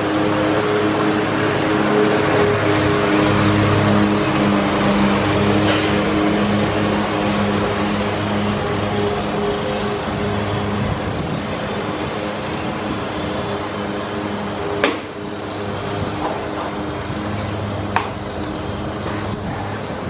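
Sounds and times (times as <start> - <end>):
small engine running: 0.0 - 20.0.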